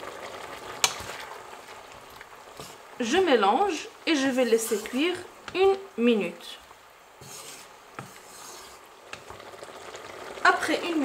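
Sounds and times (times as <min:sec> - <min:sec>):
wooden spatula scraping vegetables: 0:02.5 - 0:03.3, 0:04.2 - 0:05.8, 0:07.1 - 0:09.4.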